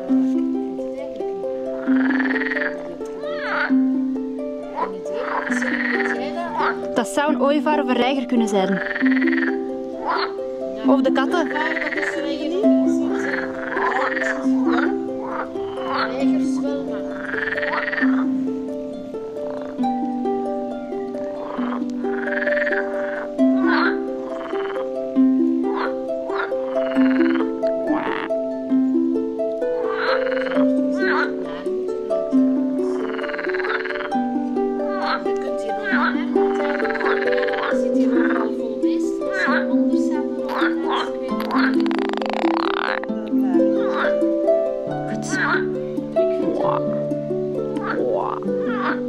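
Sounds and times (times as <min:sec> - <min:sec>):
frogs croaking: 0:00.0 - 0:49.0
plucked string music: 0:00.0 - 0:49.0
simple background melody: 0:00.0 - 0:49.0.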